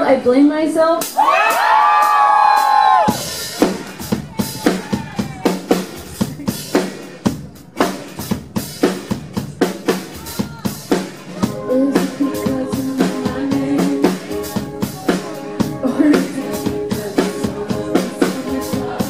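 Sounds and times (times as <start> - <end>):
band instruments: 0.8 - 19.0
live drum kit beat: 0.9 - 19.0
brief cheer: 1.2 - 3.4.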